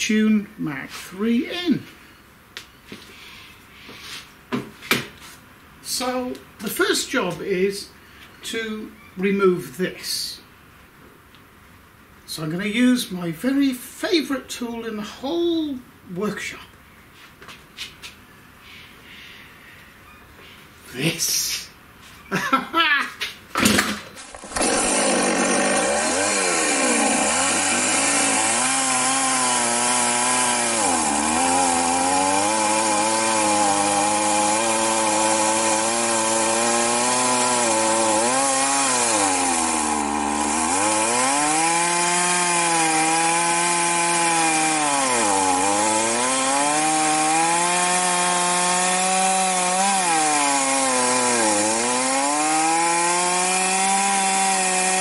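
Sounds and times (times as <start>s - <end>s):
chainsaw cutting wood: 23.6s - 55.0s.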